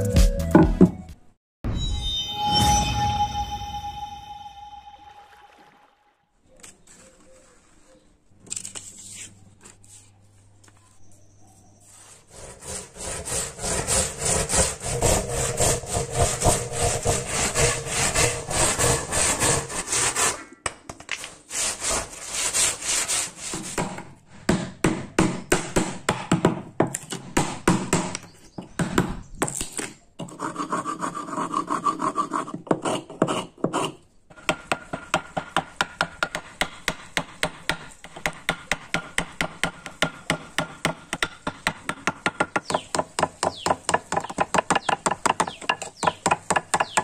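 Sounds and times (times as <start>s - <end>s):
hand saw cutting wood: 12.0s - 20.6s, 21.2s - 24.0s.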